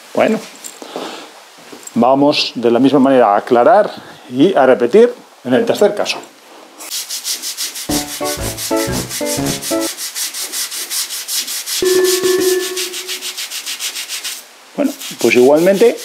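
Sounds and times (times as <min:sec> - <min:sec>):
toothbrush scrubbing tile grout: 0:06.9 - 0:11.8, 0:12.6 - 0:16.0
run of pitched notes: 0:07.9 - 0:09.9, 0:11.8 - 0:13.3
loud held tone: 0:11.8 - 0:13.3.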